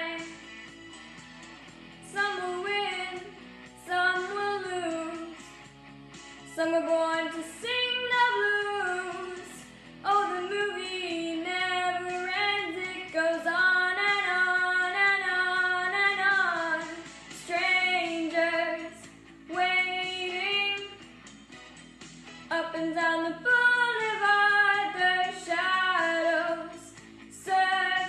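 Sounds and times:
girl singing: 0:00.0 - 0:00.4, 0:02.1 - 0:05.4, 0:06.6 - 0:21.0, 0:22.5 - 0:28.0.

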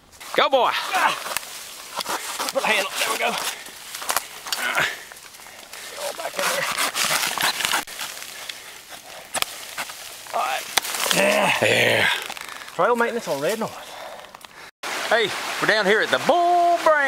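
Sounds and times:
hand saw cutting wood: 0:06.1 - 0:07.9.

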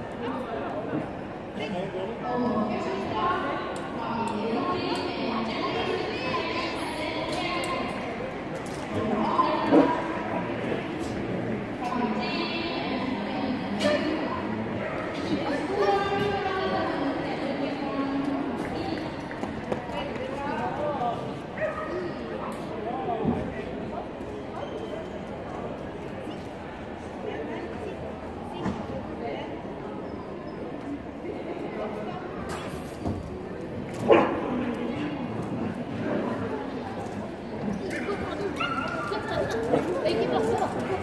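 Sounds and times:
indistinct chatter of voices: 0:00.0 - 0:41.0.

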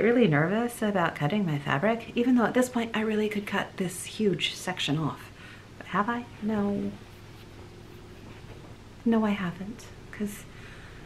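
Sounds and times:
background hiss: 0:02.1 - 0:11.0.

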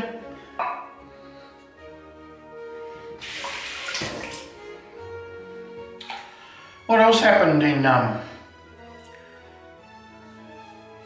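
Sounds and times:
quiet background music: 0:00.0 - 0:11.0
water running from sink tap: 0:03.2 - 0:04.5.

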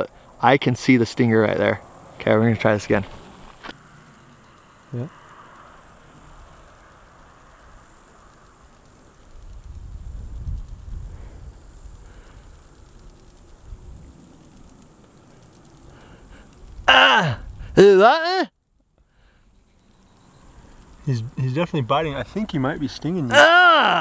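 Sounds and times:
steady high hiss: 0:00.0 - 0:24.0.

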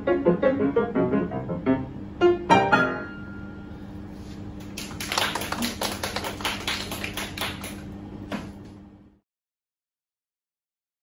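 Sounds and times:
steady low hum: 0:00.0 - 0:09.2
small audience clapping: 0:04.6 - 0:08.6.

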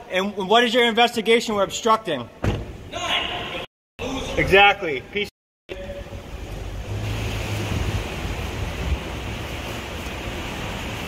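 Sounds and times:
low engine hum: 0:06.1 - 0:11.0.

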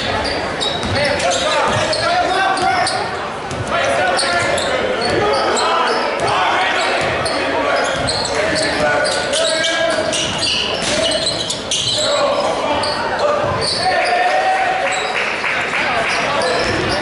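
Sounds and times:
indistinct shouts and voices echoing: 0:00.0 - 0:17.0
basketball bouncing on wooden floor: 0:00.8 - 0:01.0.

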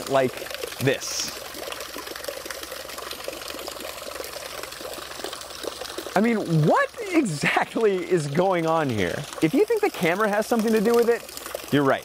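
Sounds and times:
water stream splashing into tub: 0:00.0 - 0:12.0.

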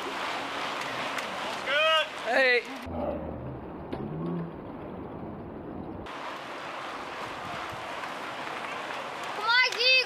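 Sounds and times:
bicycles rolling past: 0:00.0 - 0:10.0.

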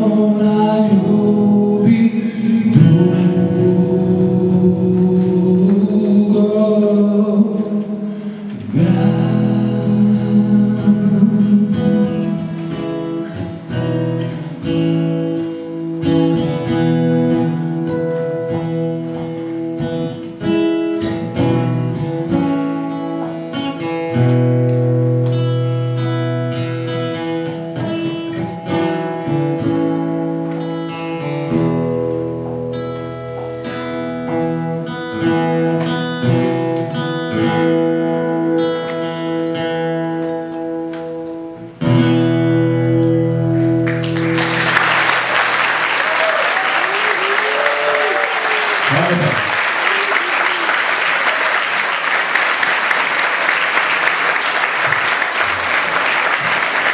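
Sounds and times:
acoustic guitar playing: 0:00.0 - 0:46.0.

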